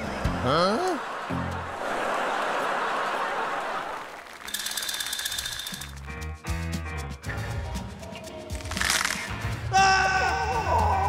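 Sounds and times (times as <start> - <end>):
background music: 0.0 - 3.8, 5.7 - 11.0
pulsing high-tone ring: 4.5 - 5.9.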